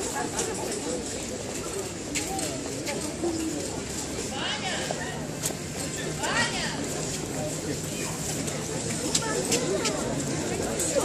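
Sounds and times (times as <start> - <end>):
crowd talking: 0.0 - 11.0.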